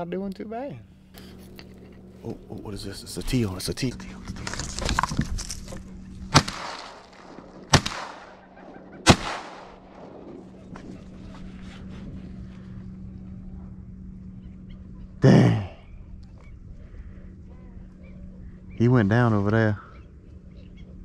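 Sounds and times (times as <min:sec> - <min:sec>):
shotgun shots echoing: 0:06.3 - 0:10.8.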